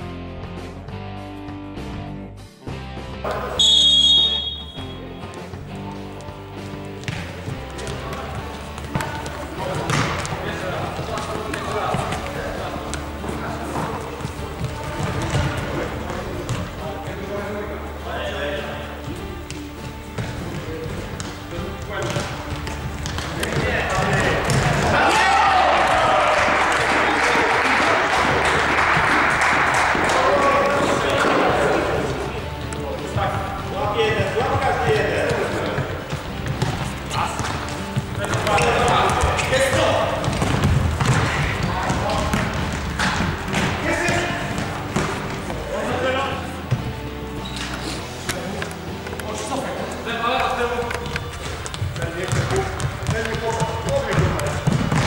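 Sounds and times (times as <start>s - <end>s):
players' voices calling: 3.2s - 55.0s
ball kicked and bouncing on floor: 6.2s - 13.1s, 13.8s - 16.7s, 19.5s - 25.0s, 34.1s - 45.6s, 50.9s - 55.0s
ball thudding on floor: 9.8s - 10.4s.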